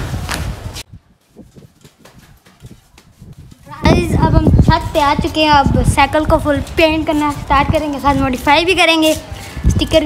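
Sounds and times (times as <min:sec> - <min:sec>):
boy's voice: 0:03.6 - 0:10.0.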